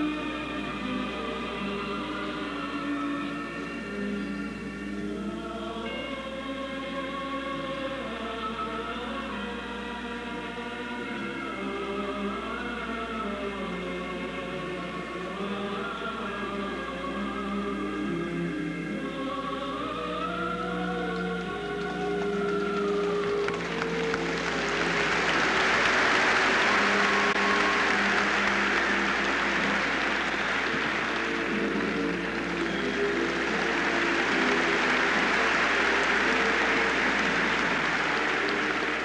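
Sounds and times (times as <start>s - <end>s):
background music: 0.0s - 39.0s
audience applause: 21.6s - 39.0s.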